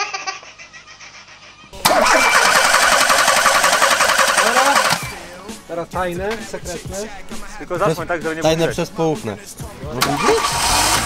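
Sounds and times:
baby laughing: 0:00.0 - 0:02.4
car engine running loudly: 0:10.0 - 0:11.0.

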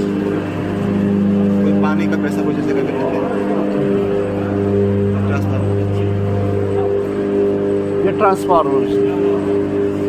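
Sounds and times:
deep electrical transformer hum: 0:00.0 - 0:10.0.

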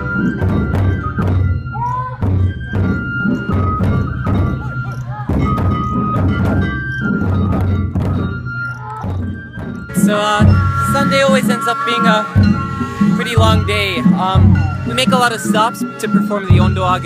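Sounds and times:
high melody line: 0:00.0 - 0:17.0
large taiko drums beating: 0:00.0 - 0:17.0.

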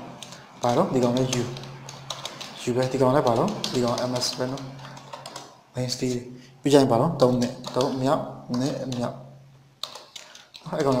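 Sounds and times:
computer keyboard typing: 0:00.1 - 0:05.6, 0:07.2 - 0:09.2, 0:09.8 - 0:11.0
man talking: 0:00.6 - 0:01.6, 0:02.6 - 0:04.8, 0:05.7 - 0:09.4, 0:10.6 - 0:11.0.

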